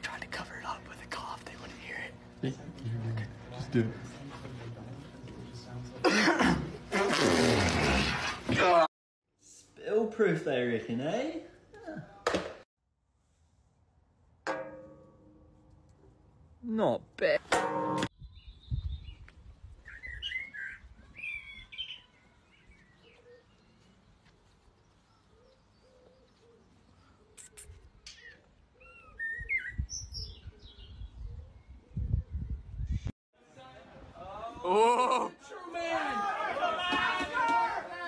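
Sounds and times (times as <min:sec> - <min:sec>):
birds chirping: 0:18.1 - 0:33.1.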